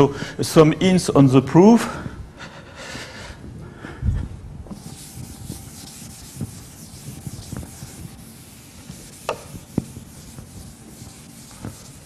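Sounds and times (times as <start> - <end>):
chalk scraping on blackboard: 4.7 - 12.0.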